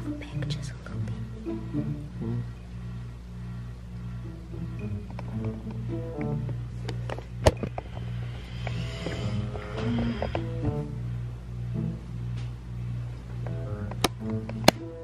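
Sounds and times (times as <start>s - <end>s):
background music with plucked notes: 0.0s - 3.3s, 4.0s - 7.7s, 9.1s - 15.0s.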